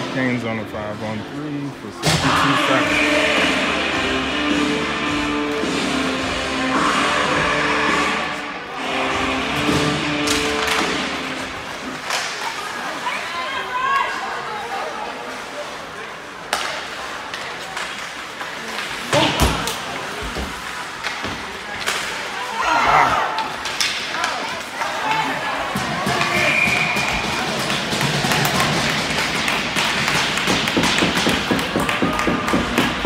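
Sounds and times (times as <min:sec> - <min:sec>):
music over loudspeakers: 0:02.3 - 0:10.5
spectators chattering: 0:11.2 - 0:30.0
stick hitting puck: 0:27.6 - 0:33.0.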